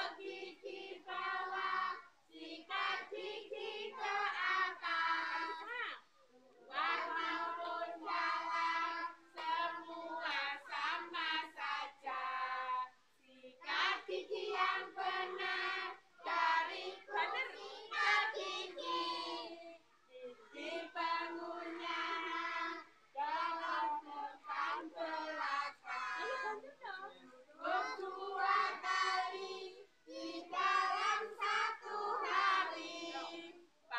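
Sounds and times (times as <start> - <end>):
young children singing: 0.0 - 5.7, 6.6 - 13.0, 13.6 - 33.7.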